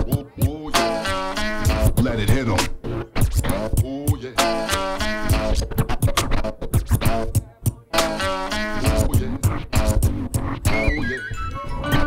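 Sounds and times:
hip hop drum beat: 0.0s - 11.2s, 11.8s - 12.0s
record scratching: 0.0s - 12.0s.

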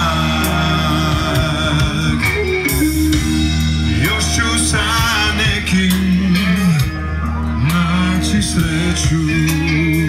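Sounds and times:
male singer: 0.0s - 3.0s, 3.8s - 10.0s
bass guitar: 0.0s - 10.0s
drum kit: 0.0s - 10.0s
electric guitar: 0.0s - 10.0s.

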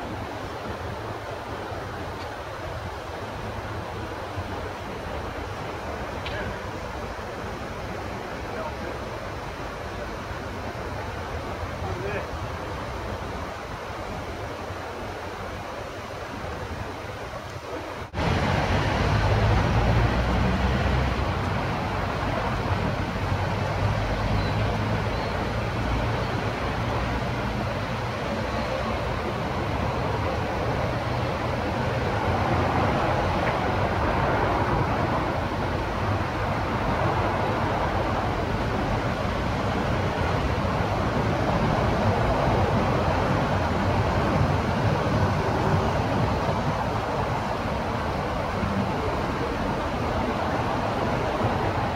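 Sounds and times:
low rumble of wind on microphone: 0.0s - 51.9s
steady outdoor noise: 0.0s - 51.9s.

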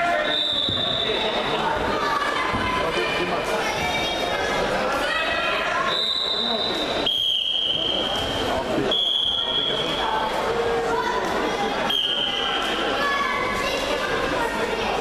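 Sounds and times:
crowd chatter: 0.0s - 15.0s
referee whistle blasts: 0.1s - 1.4s, 5.9s - 10.0s, 11.9s - 12.7s.

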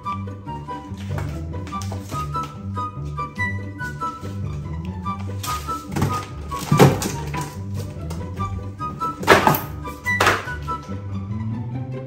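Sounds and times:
background music: 0.0s - 12.0s
books thudding on wooden floor: 0.9s - 2.6s, 5.2s - 10.8s.

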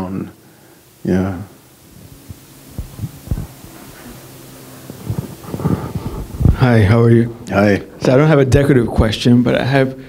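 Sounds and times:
steady low hum: 0.0s - 10.0s
soft low thumps: 1.9s - 6.8s.

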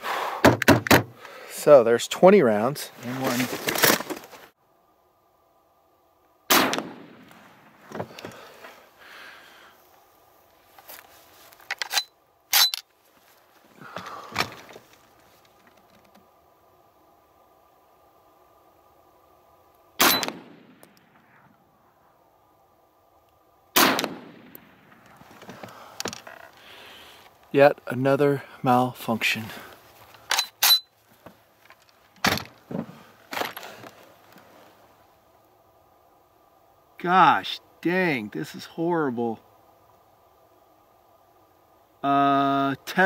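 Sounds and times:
rifle shots: 6.5s - 7.3s, 20.0s - 21.2s, 23.7s - 24.8s.

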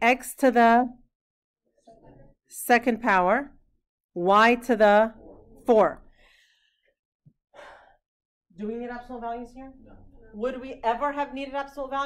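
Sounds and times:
soft breath in: 6.1s - 6.9s.

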